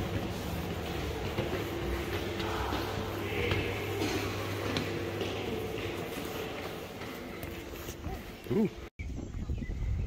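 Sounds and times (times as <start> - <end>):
footsteps on stone stairs: 0.0 - 8.9
low machine hum: 0.0 - 8.9.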